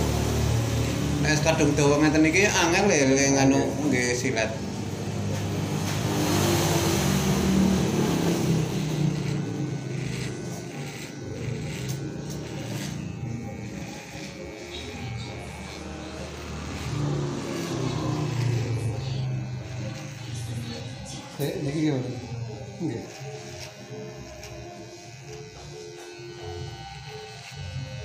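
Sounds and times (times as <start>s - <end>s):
electric hair clippers buzzing: 0.0s - 28.0s.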